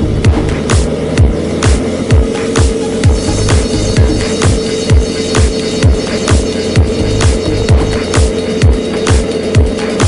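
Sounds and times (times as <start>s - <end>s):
kick drum beat: 0.0s - 9.8s
electronic dance music: 0.0s - 10.0s.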